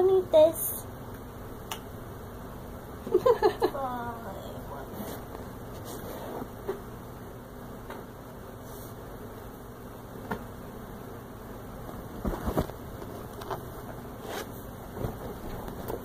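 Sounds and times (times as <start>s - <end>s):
steady low hum: 0.0s - 16.0s
rustles: 11.9s - 16.0s.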